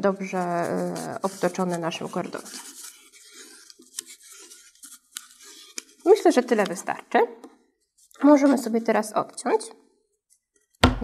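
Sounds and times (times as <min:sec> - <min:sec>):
thread rubbing on balloon: 0:00.0 - 0:07.0.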